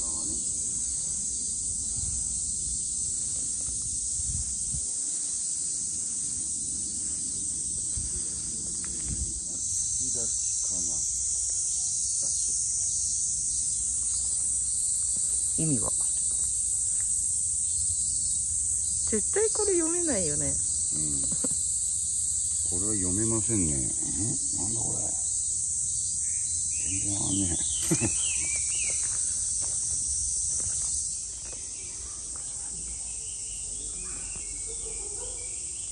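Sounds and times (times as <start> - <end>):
cicadas droning: 0.0 - 35.9.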